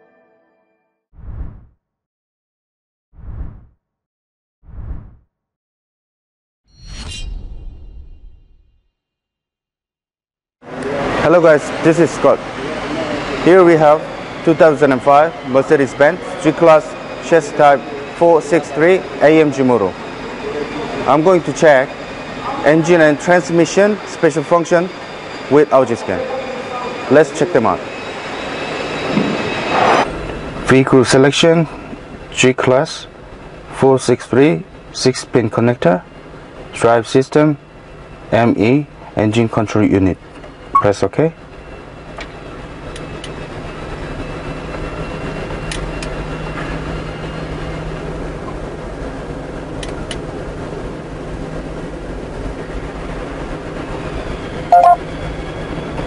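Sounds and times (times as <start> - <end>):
short loud tone: 54.7 - 55.0.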